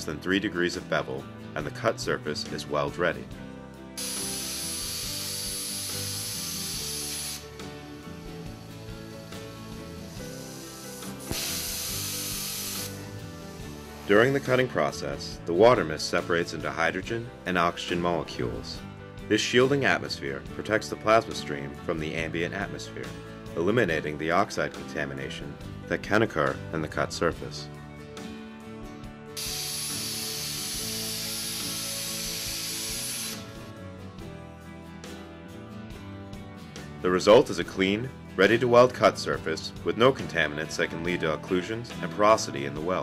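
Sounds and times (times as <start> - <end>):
background music: 0.0 - 43.0
plasma torch hissing: 4.0 - 14.7, 29.4 - 33.7.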